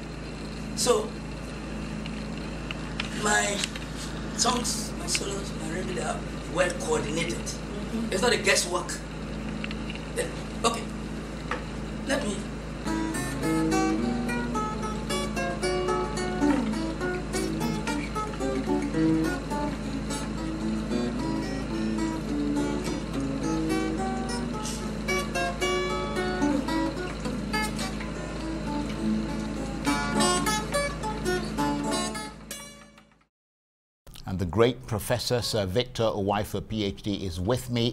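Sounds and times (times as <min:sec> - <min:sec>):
steady low hum: 0:00.0 - 0:33.0
guitar solo: 0:12.2 - 0:32.8.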